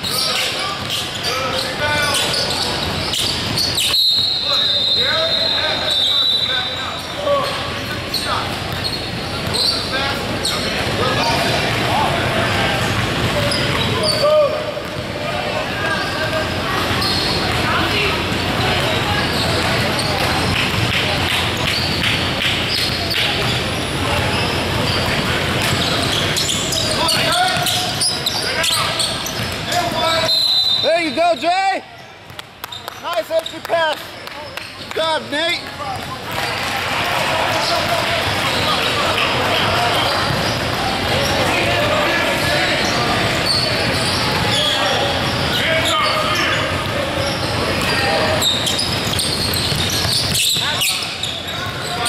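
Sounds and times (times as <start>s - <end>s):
echoing voices in a gym: 0.0s - 52.0s.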